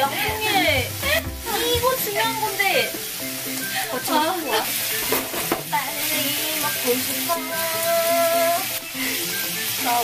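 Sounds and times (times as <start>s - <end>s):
background music: 0.0s - 10.0s
meat sizzling in a pan: 0.0s - 10.0s.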